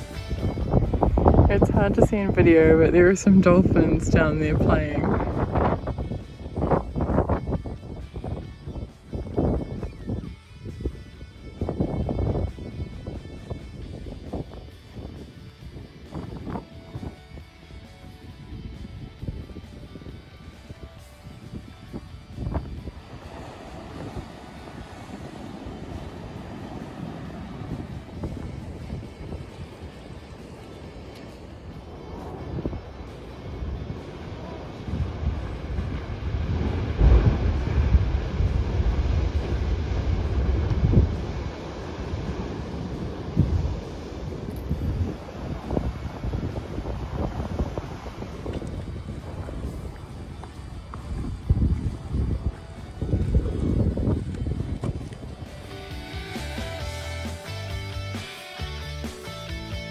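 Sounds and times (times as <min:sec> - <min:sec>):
ocean surf: 0:00.0 - 0:09.6, 0:19.3 - 0:59.9
wind buffeting microphone: 0:00.0 - 0:57.0.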